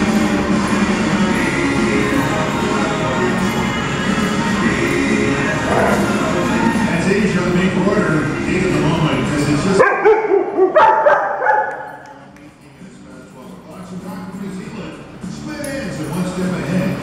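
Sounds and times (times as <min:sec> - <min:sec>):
dogs barking and yipping: 0:05.6 - 0:06.2, 0:09.8 - 0:11.9.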